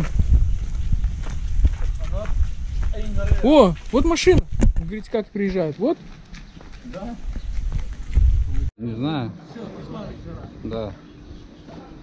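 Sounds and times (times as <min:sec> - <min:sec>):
low fluctuating microphone rumble: 0:00.0 - 0:03.5, 0:07.2 - 0:08.7.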